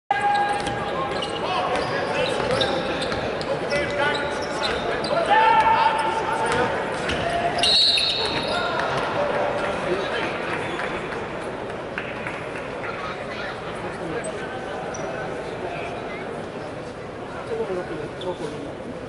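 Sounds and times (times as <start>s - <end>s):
players' voices in a hall: 0.1s - 19.0s
sneakers squeaking: 0.2s - 8.7s, 14.2s - 15.2s
referee's whistle: 7.6s - 8.6s.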